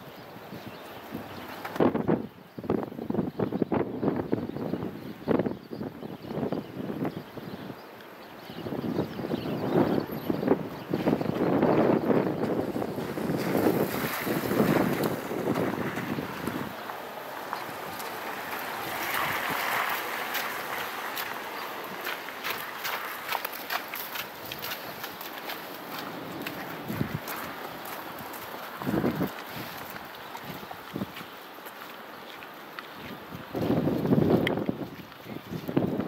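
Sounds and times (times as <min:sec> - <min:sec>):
wind buffeting microphone: 0:00.0 - 0:36.0
footsteps on slushy path: 0:10.5 - 0:36.0.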